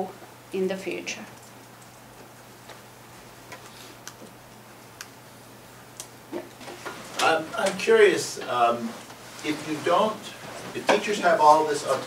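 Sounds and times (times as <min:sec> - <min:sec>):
steady low hum: 0:00.0 - 0:12.0
soft rustle: 0:08.5 - 0:12.0.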